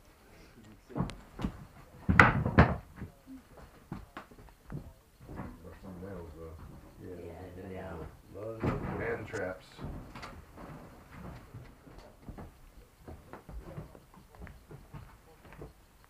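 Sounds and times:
creaks of dry wood: 0.8 - 16.0
footsteps on wooden floorboards: 0.9 - 7.0, 7.8 - 15.8.

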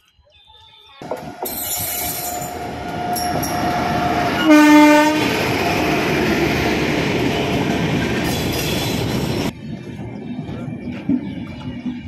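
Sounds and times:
train rumbling along track: 1.0 - 12.0
train horn blast: 1.2 - 5.7.

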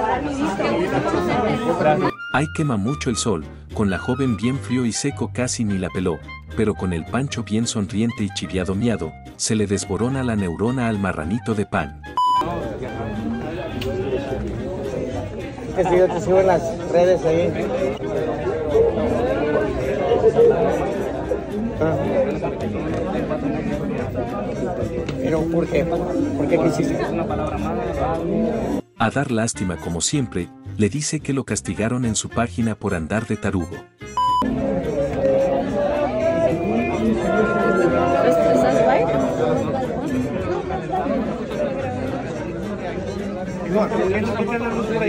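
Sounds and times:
crowd of people talking: 0.0 - 45.0.

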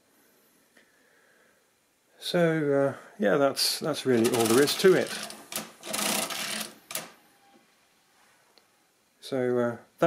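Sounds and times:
gears whirring and clattering: 4.2 - 7.1
calculator crank click: 4.2 - 7.2.

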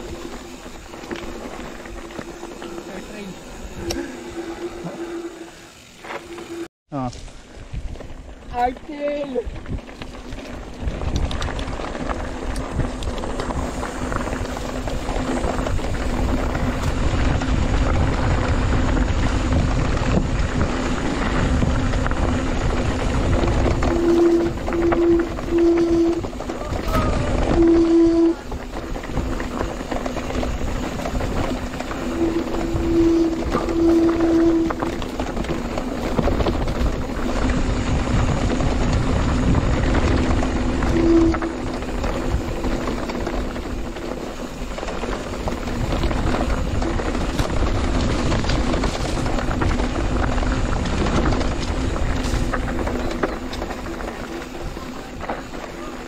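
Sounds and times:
low humming tone: 0.0 - 6.7, 20.4 - 44.2
bike rattling: 0.0 - 56.0
bike tyres rumbling on dirt: 0.0 - 56.0
wind noise: 0.0 - 56.0.

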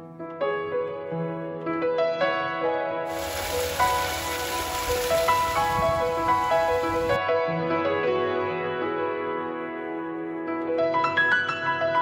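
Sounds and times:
soft piano music: 0.0 - 12.0
water splashing down rocks: 3.1 - 7.2.

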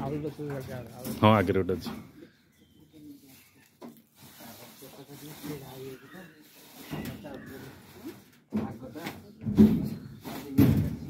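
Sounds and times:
faint background talk: 0.0 - 11.0.

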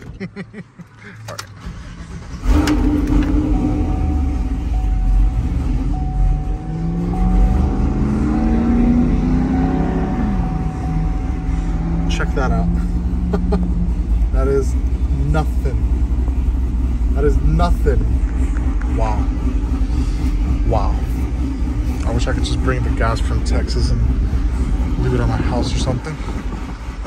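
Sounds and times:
engine idling low rumble: 0.0 - 27.0.

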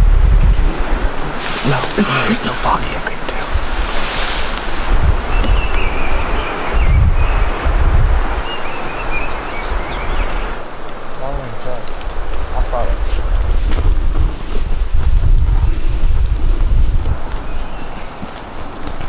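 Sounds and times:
wind buffeting microphone: 0.0 - 2.0, 2.6 - 19.0.

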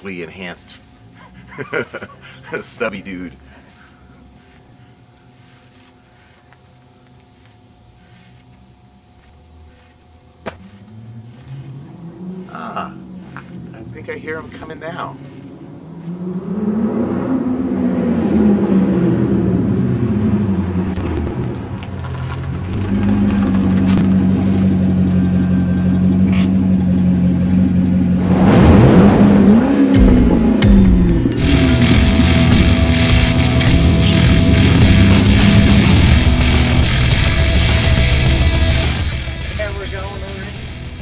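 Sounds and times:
car engine running: 10.6 - 41.0
heavy rock music: 28.2 - 41.0.

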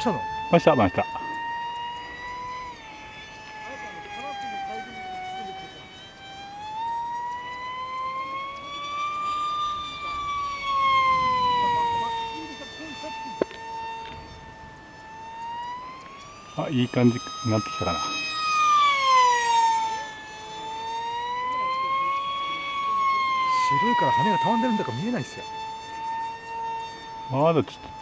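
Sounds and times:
model plane motor whine: 0.0 - 28.0.

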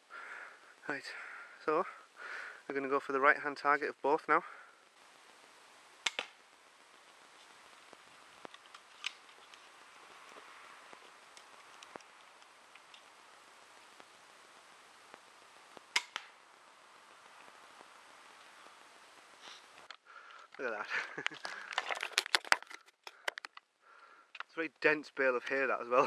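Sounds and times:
faint outdoor hiss: 0.0 - 26.0
crossbow firing crack: 6.0 - 6.4, 8.4 - 9.4, 15.8 - 16.4.

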